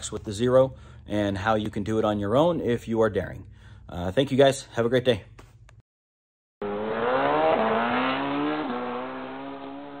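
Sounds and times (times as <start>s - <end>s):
vehicle engine accelerating: 6.6s - 10.0s.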